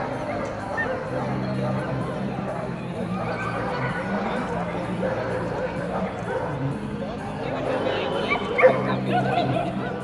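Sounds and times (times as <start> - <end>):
dog barking: 0.0 - 1.8, 4.8 - 6.7, 8.3 - 9.0
people talking: 0.0 - 10.0.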